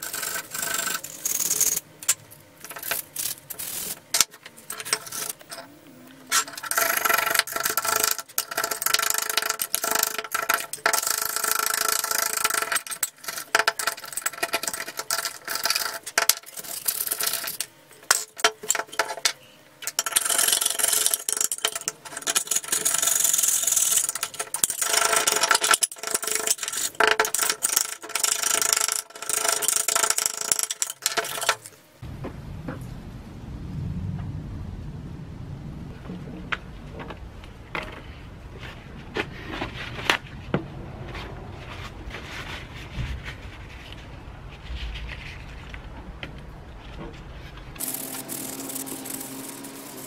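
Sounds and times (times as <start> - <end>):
screwdriver scratching metal: 0.0 - 5.7, 6.3 - 19.2, 19.8 - 31.7, 47.8 - 50.0.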